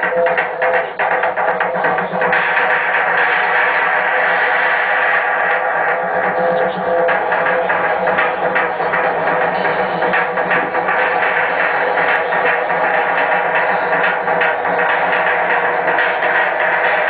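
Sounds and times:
electronic rock band playing: 0:00.0 - 0:17.0.

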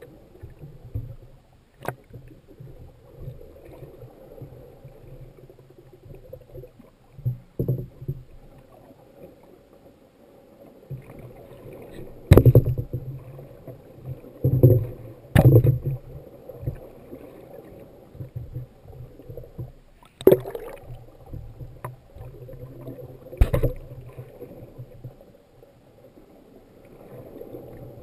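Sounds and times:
water sloshing underwater: 0:00.0 - 0:28.0.

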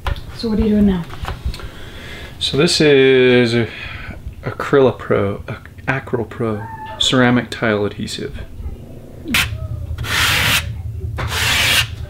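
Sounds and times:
trowel scraping adhesive: 0:09.4 - 0:12.0.

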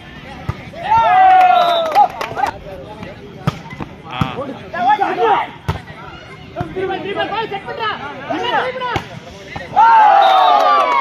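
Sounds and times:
players and spectators shouting: 0:00.2 - 0:02.7, 0:04.0 - 0:11.0.

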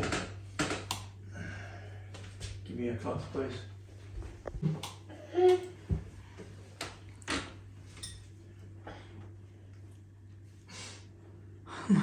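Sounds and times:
person humming: 0:05.1 - 0:05.8.

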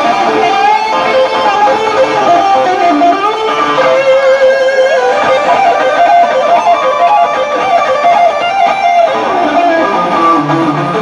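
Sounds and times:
electric guitar solo: 0:00.0 - 0:11.0.

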